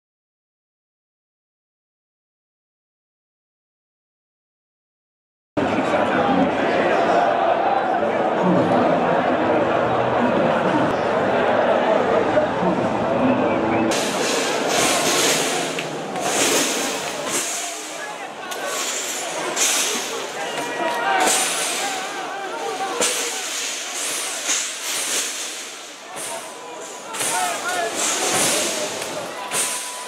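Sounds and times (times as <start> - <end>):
men shouting: 5.6 - 13.4, 14.0 - 24.6.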